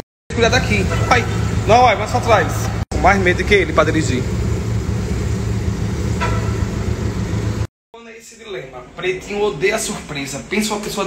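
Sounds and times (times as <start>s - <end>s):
car engine low rumble: 0.4s - 7.7s.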